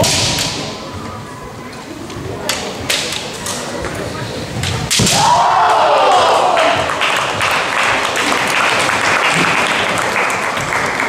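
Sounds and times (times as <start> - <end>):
bamboo sword strike crack: 0.0 - 0.6, 4.9 - 5.4.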